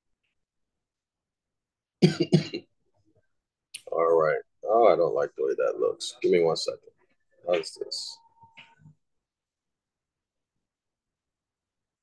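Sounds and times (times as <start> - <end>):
man coughing: 2.0 - 2.7.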